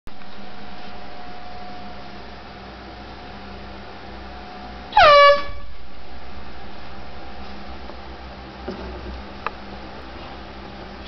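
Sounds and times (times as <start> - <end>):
air horn blast: 4.9 - 5.8.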